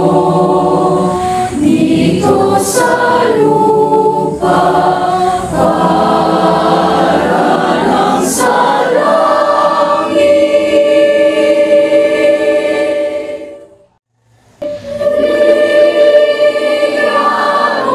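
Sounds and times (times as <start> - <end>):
youth choir singing in harmony: 0.0 - 14.0, 14.6 - 17.9.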